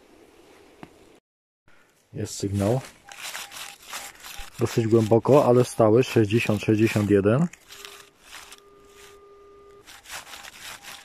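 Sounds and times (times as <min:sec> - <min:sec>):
metal detector steady tone: 0:02.2 - 0:11.0
rustling over snowy leaves: 0:02.2 - 0:11.0
faint short beeps: 0:07.7 - 0:09.8.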